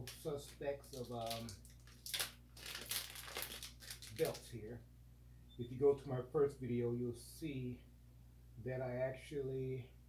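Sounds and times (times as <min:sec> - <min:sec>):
plastic packaging crinkling: 0:00.0 - 0:04.5.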